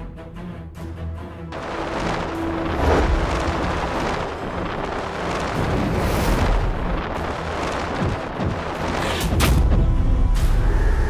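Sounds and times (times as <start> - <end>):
rushing wind with low rumble: 1.5 - 11.0.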